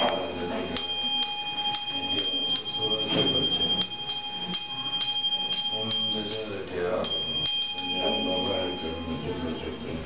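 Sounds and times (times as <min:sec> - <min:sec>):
hand bell ringing: 0:00.0 - 0:09.4.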